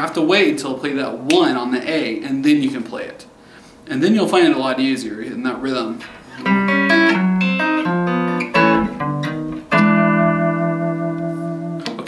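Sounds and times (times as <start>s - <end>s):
electric guitar blues lick: 6.0s - 12.0s.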